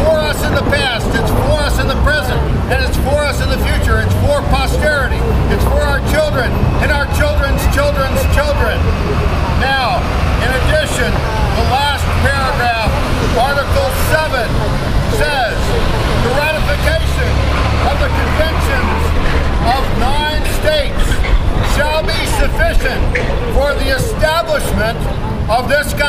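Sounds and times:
man speaking: 0:00.0 - 0:26.0
traffic rumble: 0:00.0 - 0:26.0.

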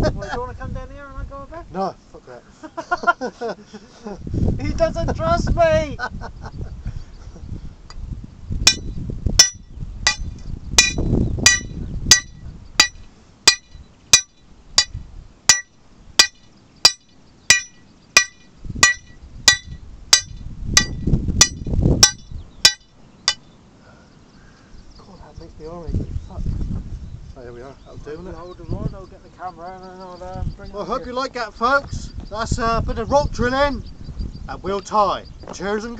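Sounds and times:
hammer striking steel drill rod: 0:08.7 - 0:23.4.

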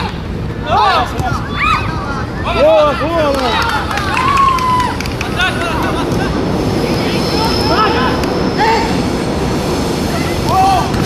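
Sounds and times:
background crowd din: 0:00.0 - 0:11.0.

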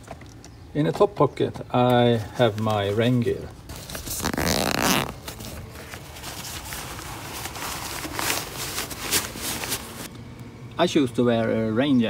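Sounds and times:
fabric rustling and crinkling: 0:02.4 - 0:10.1.

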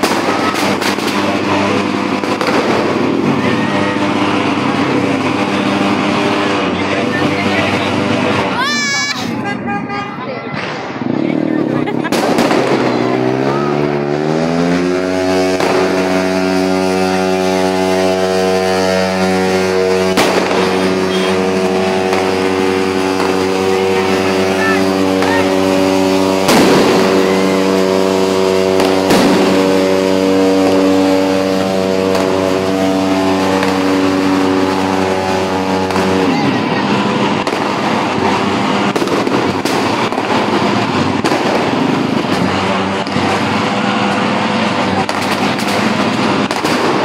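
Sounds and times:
low droning tone: 0:00.0 - 0:10.2, 0:10.8 - 0:47.0
firework bangs: 0:00.0 - 0:47.0.

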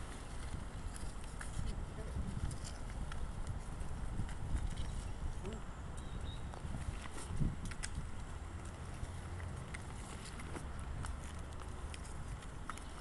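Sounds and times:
camera handling rumble: 0:06.0 - 0:13.0.

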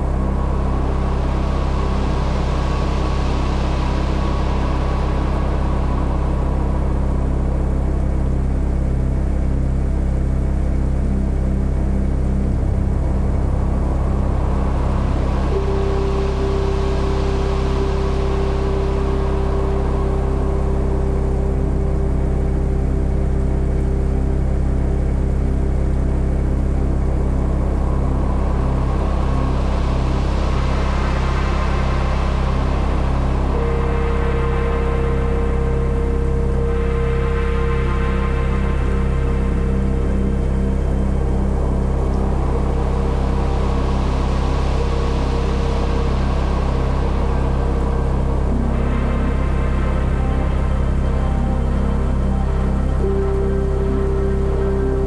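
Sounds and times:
ambient drone music: 0:00.0 - 0:55.0.

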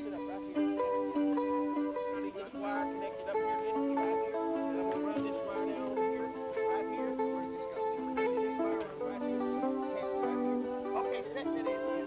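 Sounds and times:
guitar sustained single notes: 0:00.0 - 0:12.0.

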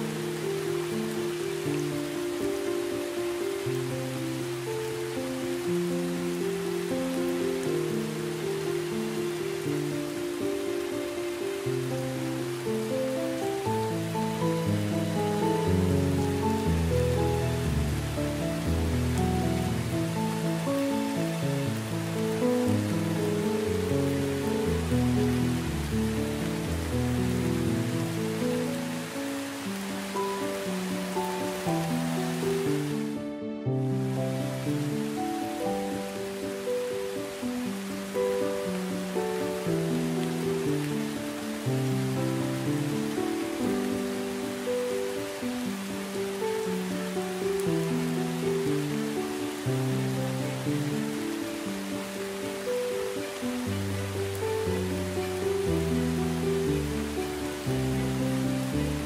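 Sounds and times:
slow relaxation music: 0:00.0 - 0:59.0
steady rain: 0:00.0 - 0:59.0.

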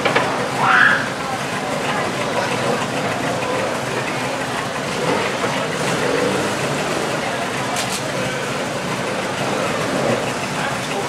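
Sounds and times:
distant rally car engine: 0:00.0 - 0:11.0.

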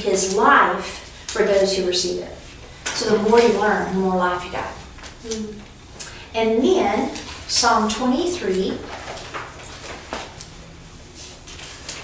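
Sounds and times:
paper pages rustling: 0:07.1 - 0:12.0.

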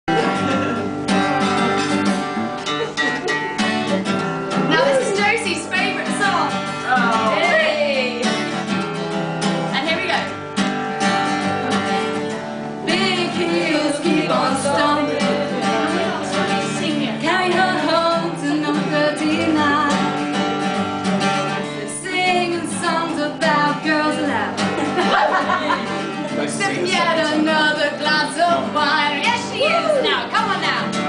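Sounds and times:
acoustic guitar strumming: 0:00.1 - 0:31.0
people talking: 0:04.6 - 0:08.3, 0:09.7 - 0:10.3, 0:12.9 - 0:19.8, 0:21.9 - 0:30.9
people singing: 0:06.8 - 0:08.4, 0:12.8 - 0:20.3, 0:21.2 - 0:30.2.

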